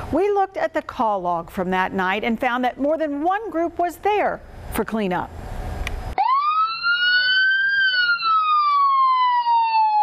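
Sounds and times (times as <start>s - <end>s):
emergency vehicle siren wailing: 6.2s - 10.0s.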